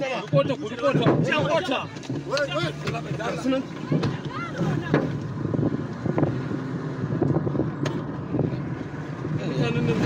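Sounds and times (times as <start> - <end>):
car engine and road rumble: 0.0 - 10.0
wind buffeting microphone: 3.0 - 10.0.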